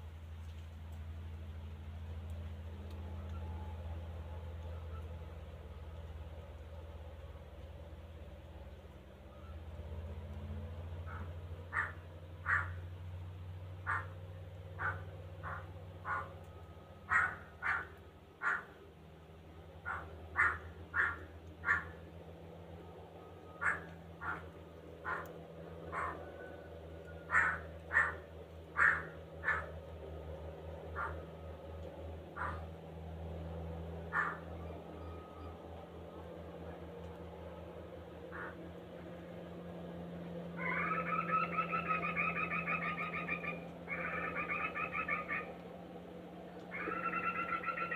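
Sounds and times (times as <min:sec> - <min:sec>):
bird harsh calls: 0:11.0 - 0:12.8, 0:13.8 - 0:14.2, 0:14.8 - 0:16.4, 0:17.1 - 0:18.8, 0:19.8 - 0:22.0, 0:23.6 - 0:25.3, 0:25.9 - 0:26.3, 0:27.2 - 0:29.8, 0:30.9 - 0:31.2, 0:32.4 - 0:32.7, 0:34.1 - 0:35.2, 0:38.3 - 0:38.6, 0:40.6 - 0:45.5, 0:46.7 - 0:47.9.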